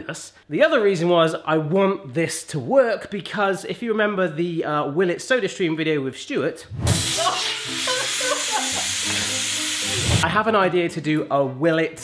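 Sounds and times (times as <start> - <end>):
drinks maker hissing: 6.9 - 10.2
liquid foaming and spraying: 6.9 - 10.2.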